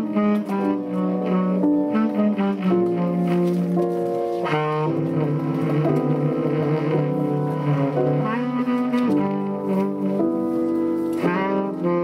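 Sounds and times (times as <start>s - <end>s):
piano accompaniment: 0.0s - 12.0s
tenor saxophone long low note: 4.4s - 10.2s, 11.2s - 12.0s.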